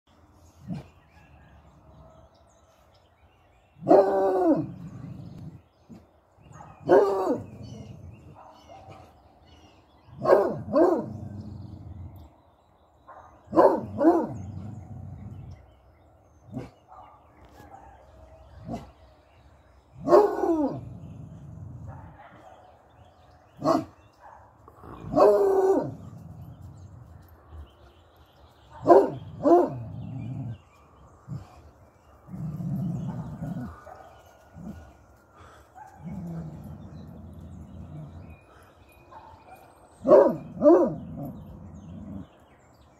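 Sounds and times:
dog growling: 4.1s - 5.8s, 20.1s - 22.2s, 31.3s - 38.7s, 40.4s - 42.6s
dog barking: 6.5s - 7.5s, 10.2s - 11.1s, 13.1s - 14.4s, 20.0s - 20.8s, 21.9s - 22.8s, 23.6s - 24.5s, 25.1s - 26.0s, 28.7s - 29.8s, 39.1s - 41.0s.

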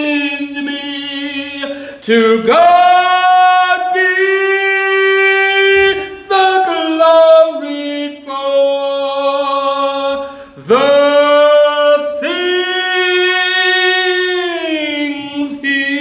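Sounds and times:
man singing: 0.0s - 16.0s.

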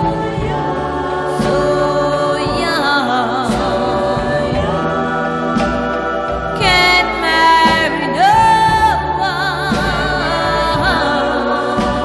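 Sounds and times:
girl-group pop song: 0.0s - 12.0s
group vocal harmonies: 0.0s - 12.0s.

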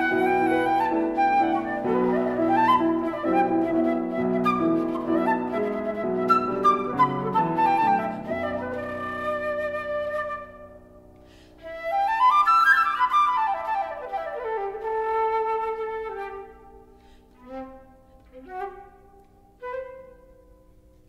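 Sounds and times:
flute playing: 0.0s - 21.0s
piano chords: 0.0s - 21.0s.

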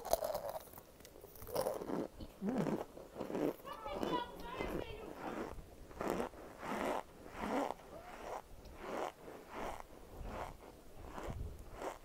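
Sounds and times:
chunks crunching while chewed: 0.0s - 12.0s.

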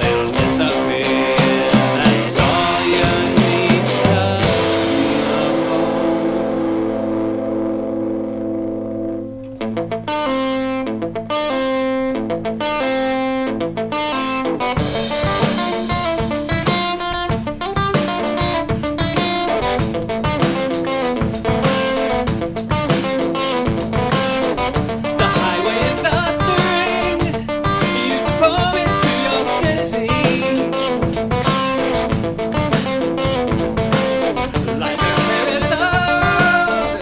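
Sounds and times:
drum kit: 0.0s - 7.8s, 14.6s - 37.0s
electric guitar through amp: 0.0s - 37.0s.

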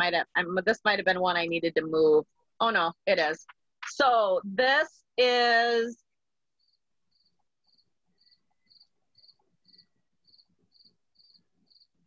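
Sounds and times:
insect chirping: 6.6s - 12.0s.

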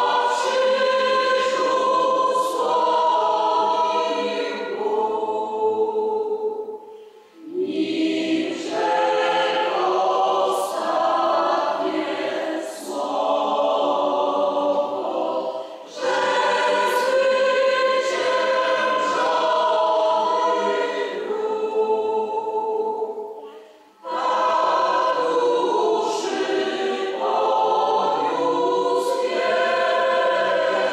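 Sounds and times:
choir singing: 0.0s - 30.9s.

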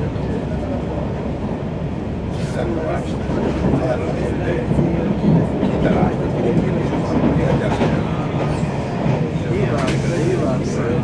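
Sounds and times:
train wheels on rails: 2.3s - 11.0s.

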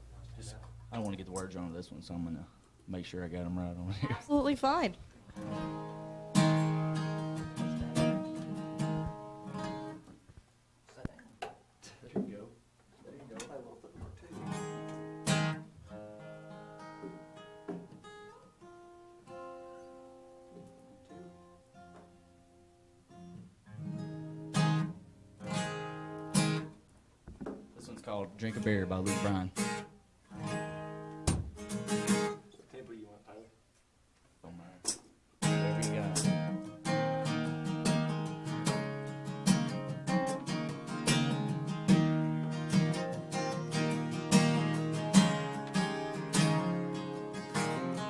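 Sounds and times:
acoustic guitars strummed and plucked: 4.1s - 10.4s, 14.2s - 32.6s, 34.8s - 48.0s.

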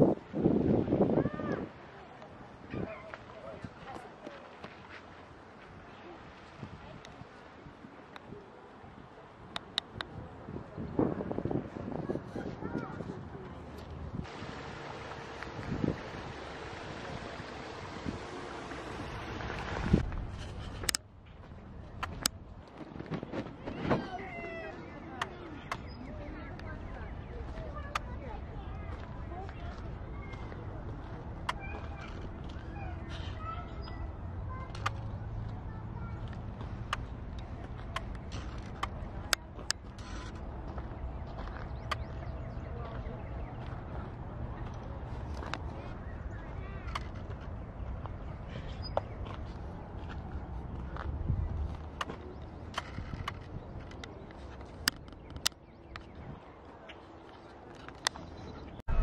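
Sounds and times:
distant voices: 1.0s - 59.0s
stream rushing over rocks: 14.3s - 20.0s
footsteps on gravel: 26.8s - 33.4s, 35.3s - 46.0s, 46.6s - 53.3s
sharp clicks: 52.7s - 56.1s
low rumble: 58.8s - 59.0s.

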